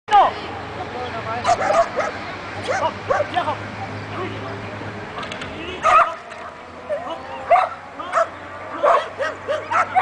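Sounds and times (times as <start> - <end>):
dog yipping and barking: 1.4 - 3.3, 5.8 - 6.2, 6.9 - 10.0.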